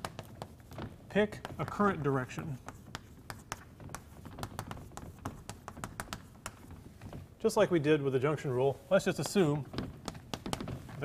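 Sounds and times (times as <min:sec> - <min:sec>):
chalk writing on a blackboard: 0:00.0 - 0:06.9.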